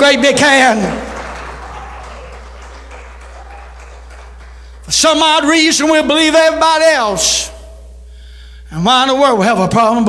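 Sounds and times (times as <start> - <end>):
congregation applauding: 0.0 - 6.5.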